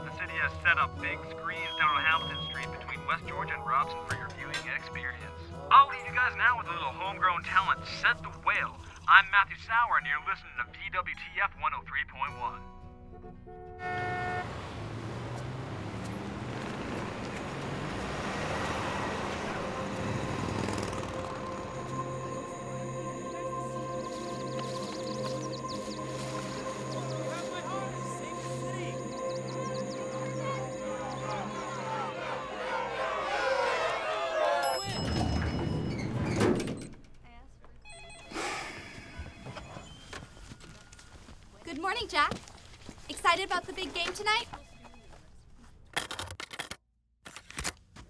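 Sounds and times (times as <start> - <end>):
low engine hum: 13.8 - 33.6
passing cars: 13.8 - 35.0
electronic trilling ring: 37.9 - 40.2.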